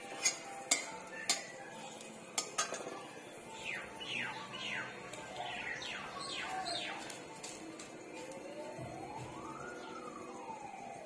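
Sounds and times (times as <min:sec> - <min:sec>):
bird chirping: 0:03.5 - 0:07.2.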